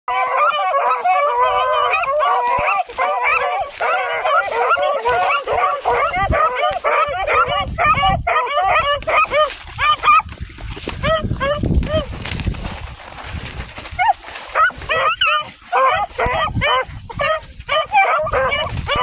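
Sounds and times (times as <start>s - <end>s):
hounds baying: 0.1s - 12.1s, 13.9s - 19.0s.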